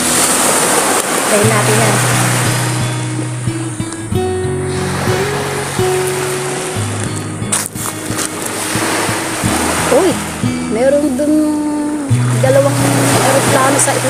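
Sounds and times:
steady rushing noise: 0:00.0 - 0:10.8
background music: 0:01.3 - 0:14.0.

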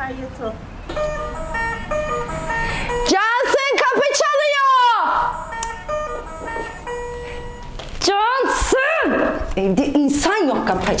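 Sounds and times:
doorbell chime melody: 0:00.9 - 0:03.3, 0:05.2 - 0:07.8.

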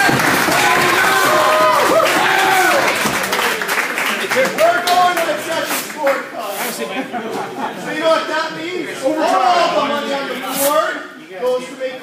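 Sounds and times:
people chattering: 0:02.5 - 0:12.0.

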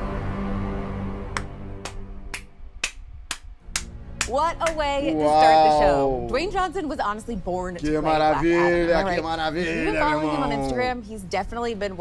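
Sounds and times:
low sustained music: 0:00.0 - 0:10.9
person clapping hands: 0:01.3 - 0:04.9.

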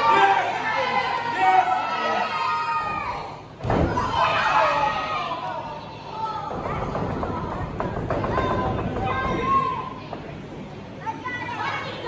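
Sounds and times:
voices shouting: 0:00.0 - 0:06.6.

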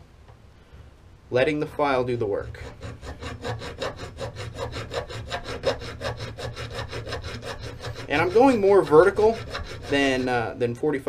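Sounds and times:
hand file rasping on metal: 0:02.2 - 0:10.5.

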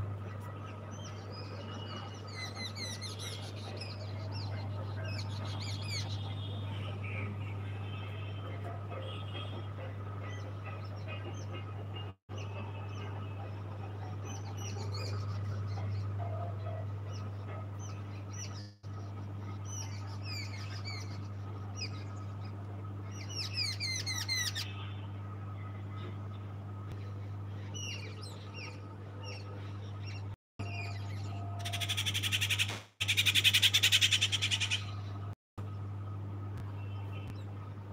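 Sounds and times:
small birds chirping: 0:00.0 - 0:08.6, 0:12.3 - 0:35.9
steady low hum: 0:00.0 - 0:37.9.

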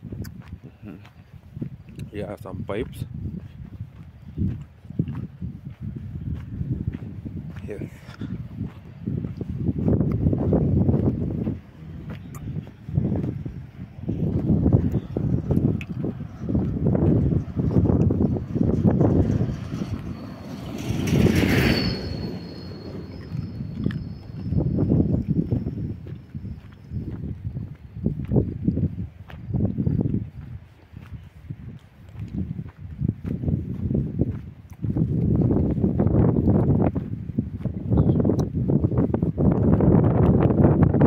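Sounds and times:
wind buffeting microphone: 0:00.0 - 0:41.0
faint high whistle: 0:20.0 - 0:27.0.

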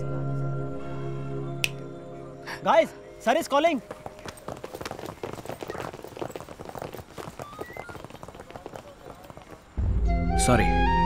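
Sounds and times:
footsteps on pavement: 0:03.5 - 0:09.8
faint voices: 0:07.2 - 0:09.7.

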